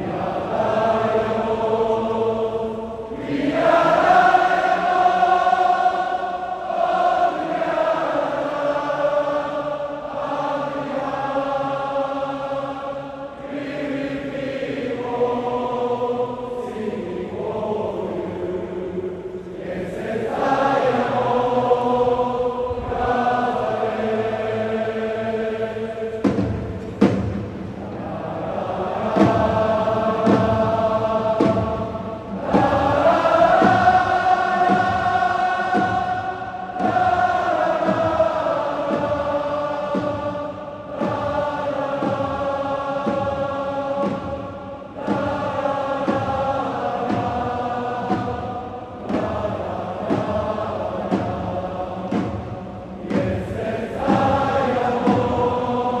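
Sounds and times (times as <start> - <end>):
crowd singing a chant: 0.0 - 56.0.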